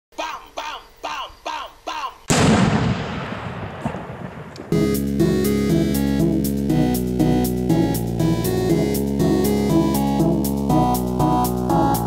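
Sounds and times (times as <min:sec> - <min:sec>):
loud bang with rumble: 0:02.3 - 0:05.0
music with held chords: 0:04.8 - 0:12.0.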